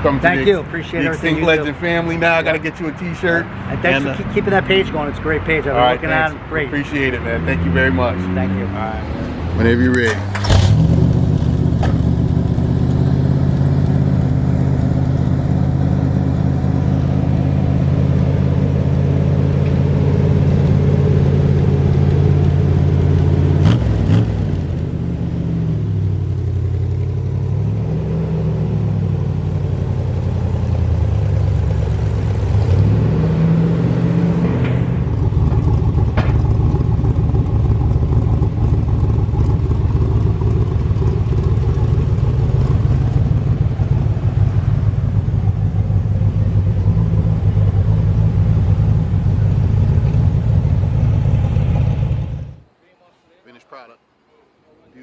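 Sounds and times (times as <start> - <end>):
car engine idling and revving: 0.0 - 52.7.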